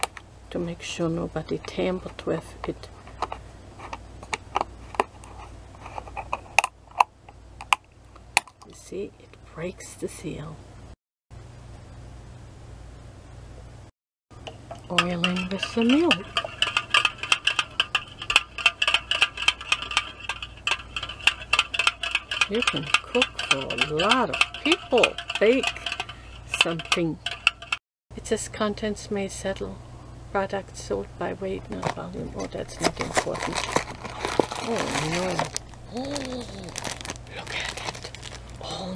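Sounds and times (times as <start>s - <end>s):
utensil clinking against bowl: 14.4s - 27.8s.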